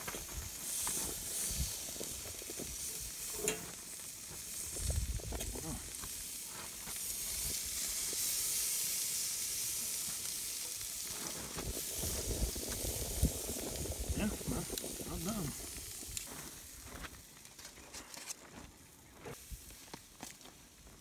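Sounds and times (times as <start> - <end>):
meat sizzling on a grill: 0.0 - 17.6, 19.3 - 21.0.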